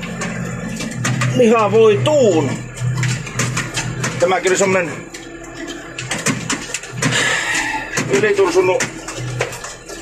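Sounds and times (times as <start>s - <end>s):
vehicle engine hum: 0.0s - 10.0s
knocks and rattles in cab: 5.7s - 10.0s.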